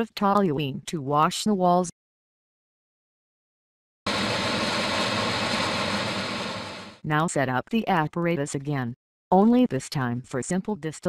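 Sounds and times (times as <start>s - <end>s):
low hum: 4.1s - 7.0s
steady mechanical rush: 4.1s - 7.0s.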